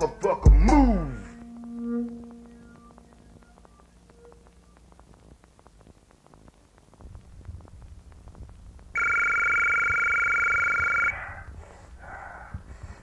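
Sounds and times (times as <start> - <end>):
faint low rumble: 0.5 - 13.0
two-tone telephone ring: 9.0 - 11.2.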